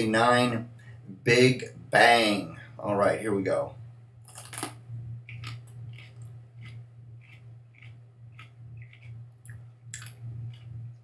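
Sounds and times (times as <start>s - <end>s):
man chewing crunchy chile: 4.2s - 11.0s
crisp bite crunch: 4.3s - 10.7s.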